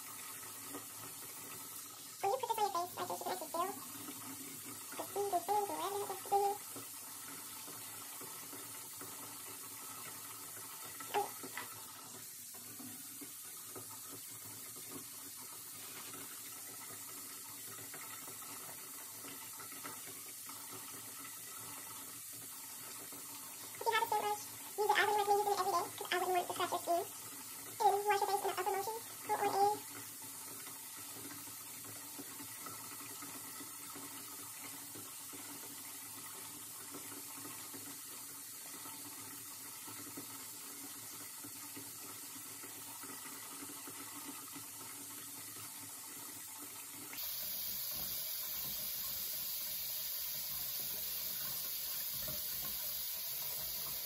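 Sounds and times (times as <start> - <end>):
water running from sink tap: 0.0 - 54.0.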